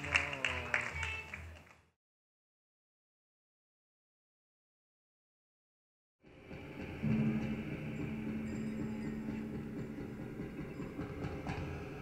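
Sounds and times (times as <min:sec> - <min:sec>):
lower hum: 0:06.3 - 0:12.0
low droning tone: 0:06.6 - 0:12.0.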